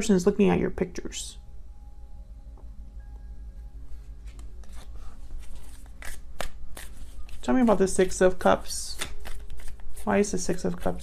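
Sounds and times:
cards being shuffled: 0:04.2 - 0:11.0.

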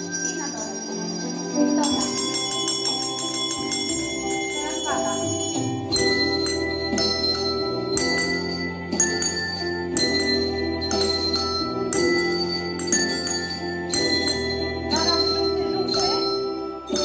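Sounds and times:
desk bells ringing: 0:00.0 - 0:17.0
instrumental backing track: 0:00.0 - 0:17.0.

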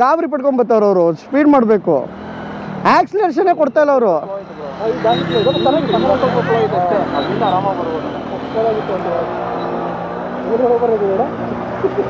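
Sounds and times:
men talking over each other: 0:00.0 - 0:12.0
vehicle engine humming: 0:00.0 - 0:12.0.

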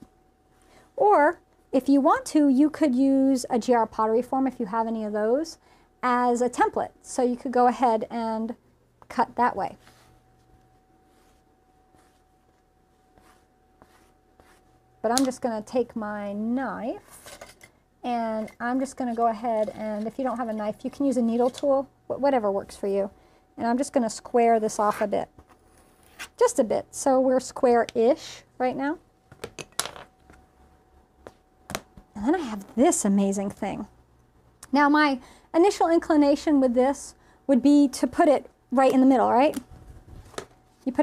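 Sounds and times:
rubber rib smoothing clay: 0:11.1 - 0:14.8.

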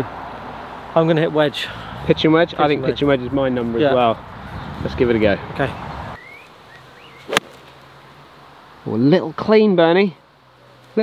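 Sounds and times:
golf club striking ball: 0:07.3 - 0:07.7.

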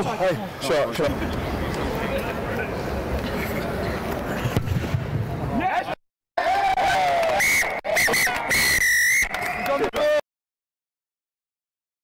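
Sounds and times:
referee's whistle blasts: 0:07.4 - 0:09.9.

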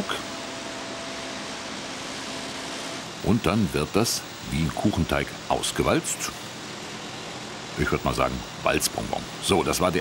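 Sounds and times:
factory machinery humming: 0:00.0 - 0:10.0.

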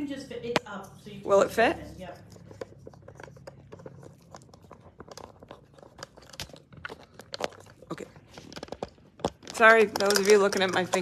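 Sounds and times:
fingers handling phone and microphone: 0:02.1 - 0:11.0.

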